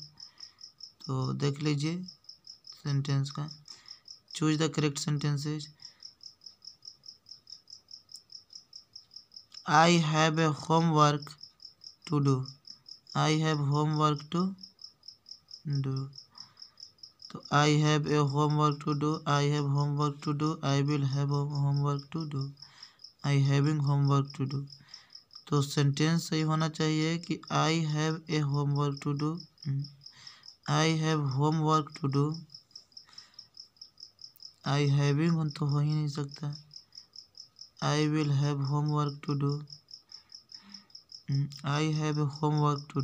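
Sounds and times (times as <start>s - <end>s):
insect chirping: 0.0s - 43.0s.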